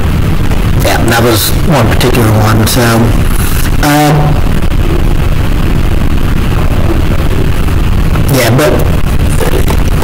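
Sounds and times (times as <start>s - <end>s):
low microphone rumble: 0.0s - 10.0s.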